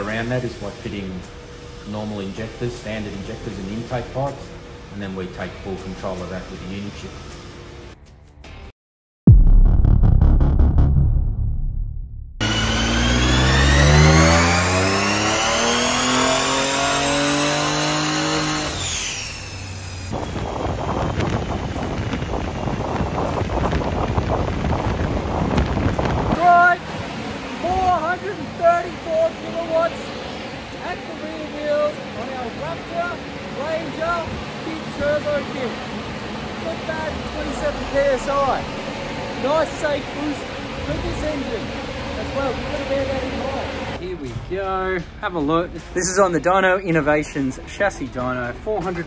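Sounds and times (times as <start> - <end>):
turbo rushing noise: 9.3 - 44.1
engine revving at full throttle: 12.4 - 44.0.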